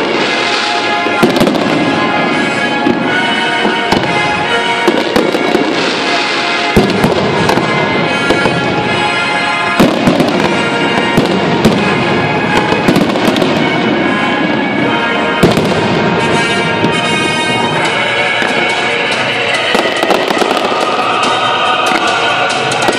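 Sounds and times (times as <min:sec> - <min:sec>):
fireworks bursting with bangs: 0:00.0 - 0:22.9
loud music: 0:00.0 - 0:22.9.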